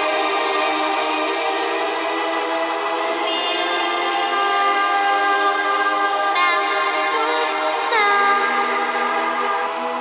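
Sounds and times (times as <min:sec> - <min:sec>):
music with sustained chords: 0:00.0 - 0:10.0.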